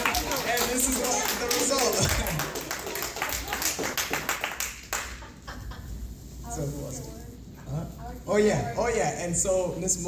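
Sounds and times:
group clapping hands: 0:00.0 - 0:05.8.

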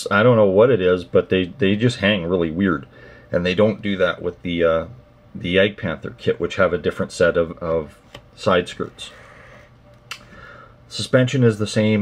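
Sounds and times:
faint steady hum: 0:00.0 - 0:12.0
small click: 0:09.9 - 0:10.3.

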